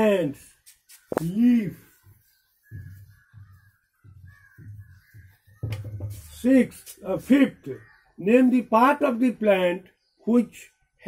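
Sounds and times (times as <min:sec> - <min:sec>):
crows cawing: 0:01.1 - 0:06.4.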